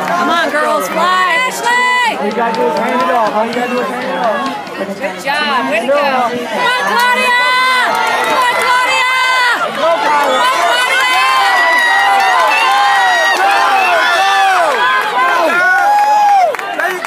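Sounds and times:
crowd yelling and cheering: 0.0s - 17.0s.

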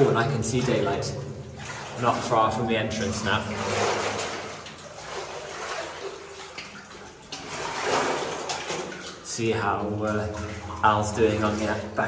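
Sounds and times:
footsteps wading through water: 0.0s - 12.0s
water sloshing and splashing: 0.0s - 12.0s.

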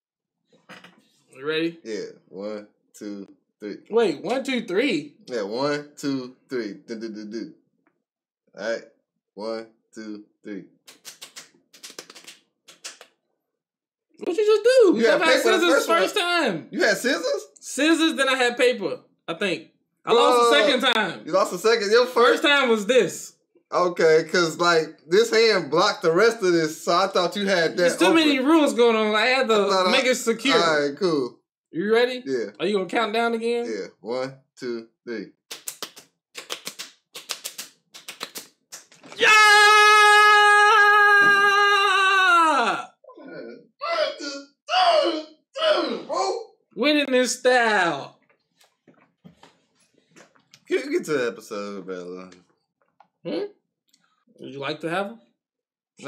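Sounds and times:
fists slapping open palms: 10.9s - 13.2s, 35.5s - 39.2s
man shouting: 14.7s - 17.4s, 20.1s - 21.1s, 27.7s - 28.5s, 29.9s - 31.0s, 39.2s - 46.4s
two people counting: 14.7s - 17.4s, 20.1s - 21.2s, 27.7s - 28.7s, 29.8s - 31.3s, 42.4s - 46.4s.

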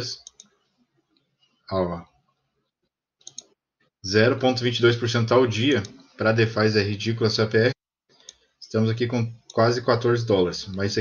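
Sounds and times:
faint computer mouse clicks: 0.2s - 1.3s, 3.2s - 3.6s, 8.2s - 8.5s.

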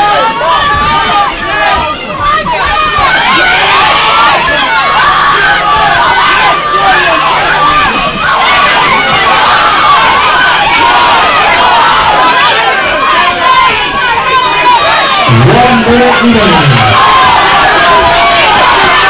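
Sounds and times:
crowd shouting and cheering: 0.0s - 19.0s
person speaking: 15.3s - 17.0s.

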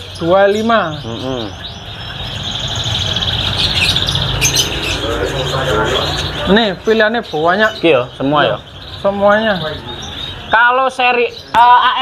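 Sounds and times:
canaries singing: 0.0s - 12.0s.

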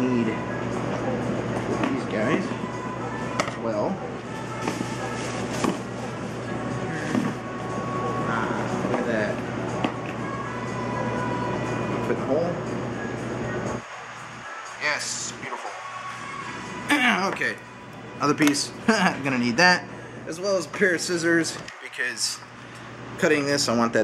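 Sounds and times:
background music: 0.0s - 22.5s.

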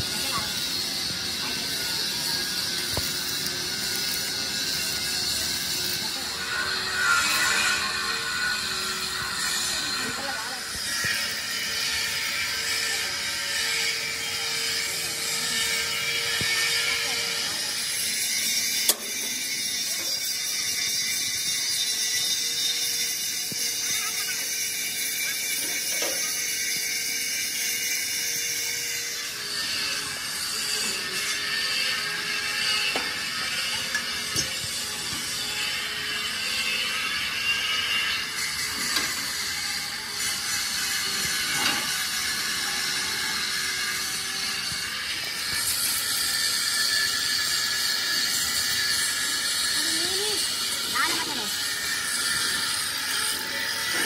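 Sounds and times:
welding arc crackling hiss: 0.0s - 54.0s.

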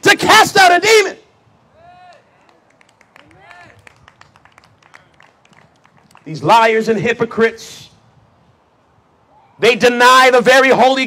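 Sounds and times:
faint irregular handclaps: 2.0s - 6.3s.

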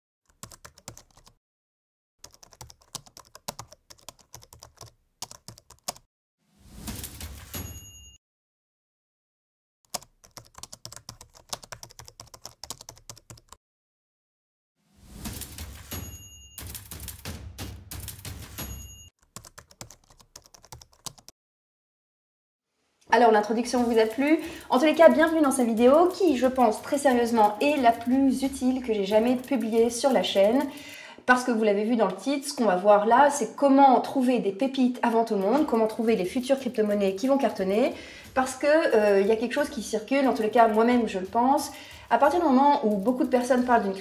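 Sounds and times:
computer keyboard typing: 0.3s - 1.4s, 2.2s - 6.1s, 9.9s - 13.6s, 15.3s - 21.3s, 23.8s - 31.0s, 35.4s - 44.0s.

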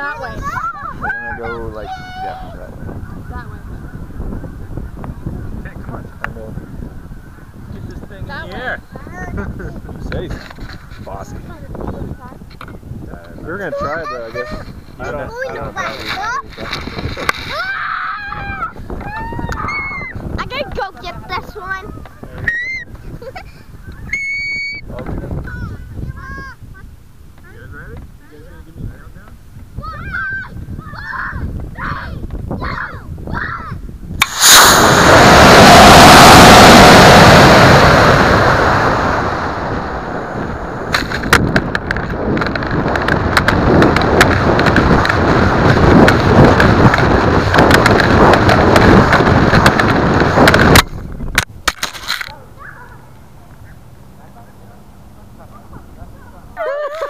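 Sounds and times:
children squealing and calling: 0.0s - 3.5s, 17.4s - 24.9s, 29.8s - 33.8s, 52.3s - 53.2s
air rushing over microphone: 0.0s - 17.8s, 31.4s - 51.6s
low rumble: 34.2s - 51.2s.

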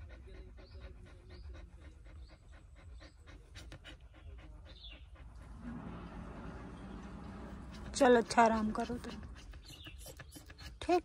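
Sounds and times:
dog panting: 0.0s - 11.0s.

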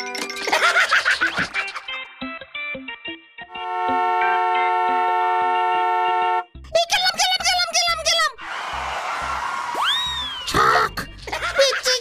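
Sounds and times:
car horn two-tone blast: 3.5s - 6.6s
cartoon character voice: 6.7s - 8.4s, 10.5s - 12.0s.

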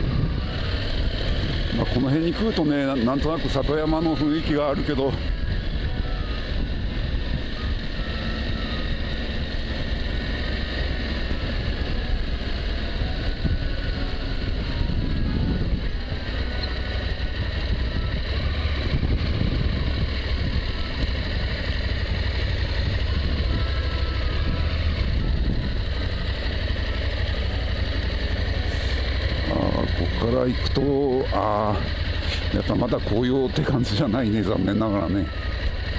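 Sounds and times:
motorcycle engine running: 0.0s - 35.9s
wind and road noise: 0.0s - 35.9s.

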